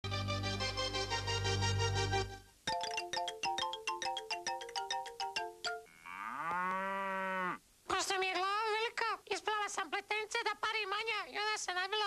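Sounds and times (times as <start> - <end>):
tinkling plucked jingle: 2.7 - 5.9
drawn-out moo-like call: 5.8 - 7.6.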